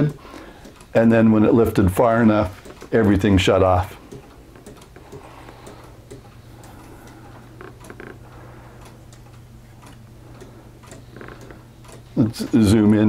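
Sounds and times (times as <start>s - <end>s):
pendulum clocks ticking: 0.0s - 13.0s.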